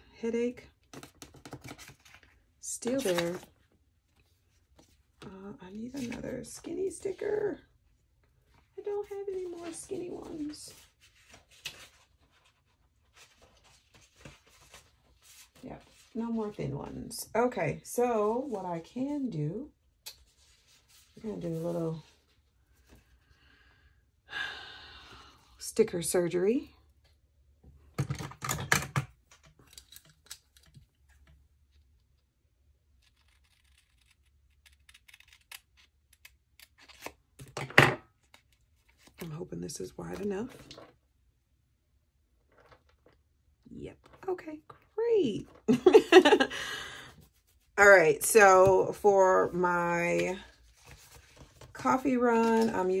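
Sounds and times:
paper sticker sheets rustling: 0:01.0 - 0:03.5
paper rustling: 0:06.0 - 0:07.1, 0:09.0 - 0:16.6, 0:50.1 - 0:53.0
scissors snipping paper: 0:33.0 - 0:37.1.

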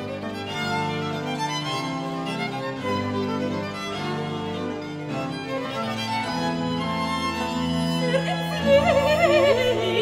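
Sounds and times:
organ continuo: 0:00.0 - 0:10.0
violins playing: 0:00.0 - 0:10.0.

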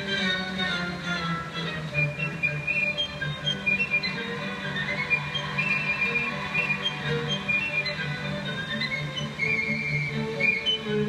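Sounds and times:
instrumental music from tv speaker: 0:00.0 - 0:11.0.

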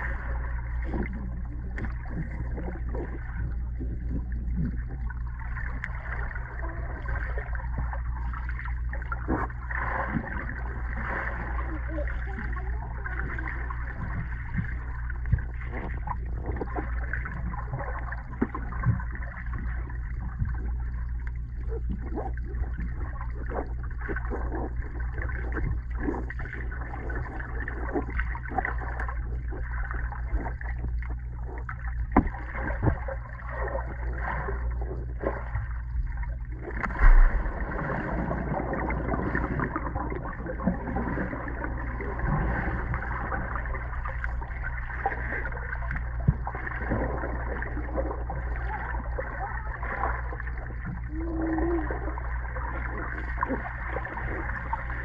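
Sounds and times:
muffled underwater rumble: 0:00.0 - 0:55.0
water bubbling: 0:00.0 - 0:55.0
water splashing: 0:00.0 - 0:55.0.

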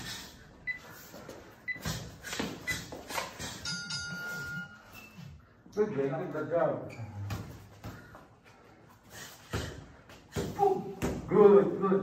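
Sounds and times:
sneakers squeaking on floor: 0:00.7 - 0:03.6.

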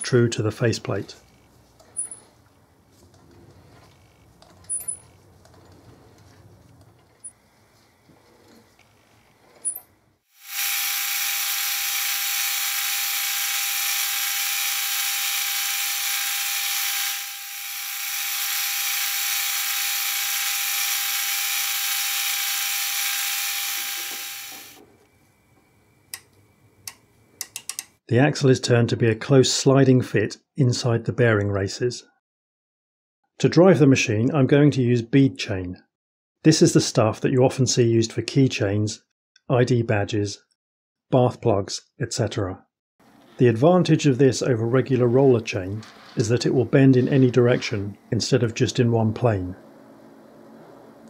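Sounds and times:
metal lathe cutting hiss: 0:10.4 - 0:24.8
clicks: 0:26.1 - 0:28.0.

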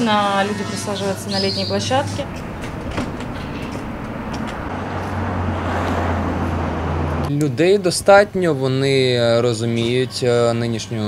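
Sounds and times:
vehicle engine rumble: 0:00.0 - 0:08.6
road noise hiss: 0:01.0 - 0:09.4.

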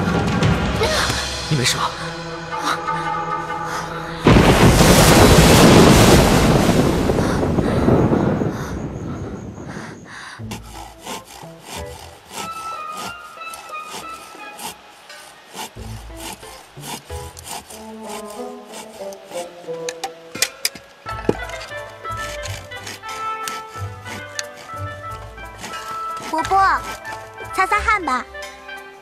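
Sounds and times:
soft music with held notes: 0:17.1 - 0:29.0.

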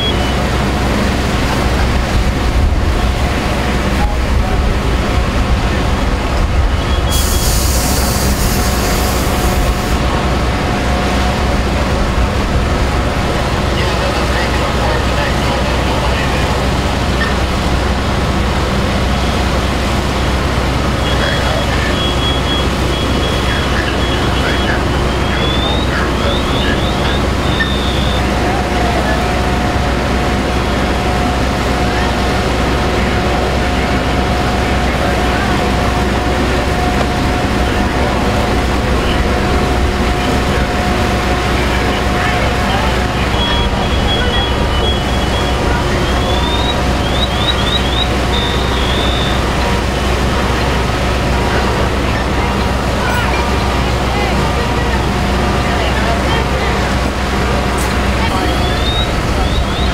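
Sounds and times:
diesel engine running: 0:00.0 - 0:59.9
burst of hiss: 0:07.1 - 0:10.0
short electronic beeps: 0:21.0 - 0:28.3, 0:43.4 - 0:49.4.

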